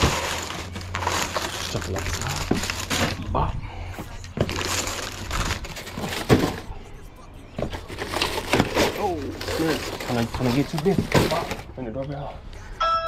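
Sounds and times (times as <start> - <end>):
plastic crinkling: 0.0 - 3.3, 4.4 - 6.7, 7.7 - 11.7.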